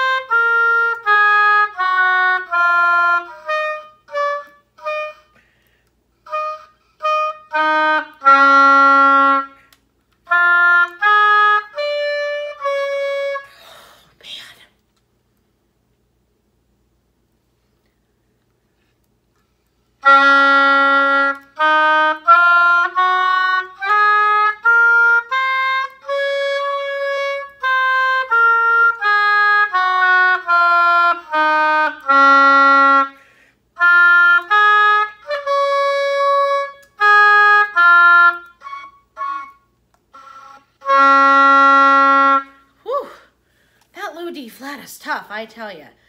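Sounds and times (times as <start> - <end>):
oboe playing scales: 0.0 - 13.7, 20.0 - 43.3.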